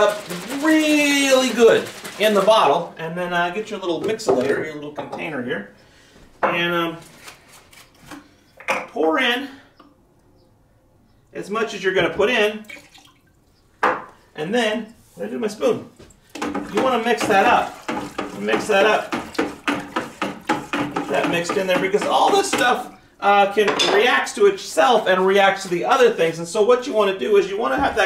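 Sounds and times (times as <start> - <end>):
wooden spoon knocking plastic bucket: 0.0 - 2.8, 3.8 - 5.3, 16.4 - 23.0.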